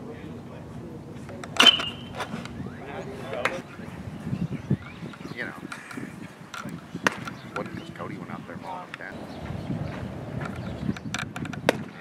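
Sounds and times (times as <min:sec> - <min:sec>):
metal bat hitting ball: 0:01.6 - 0:02.2.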